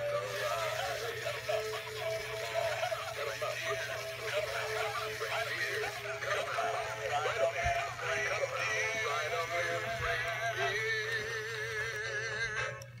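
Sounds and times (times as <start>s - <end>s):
toy figures singing through tinny speakers: 0.0s - 13.0s.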